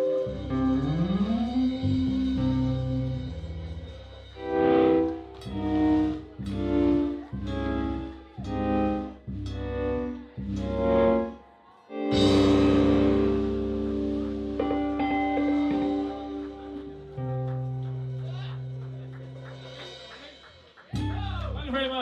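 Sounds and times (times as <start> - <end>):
blues band chords: 0.0 - 22.0.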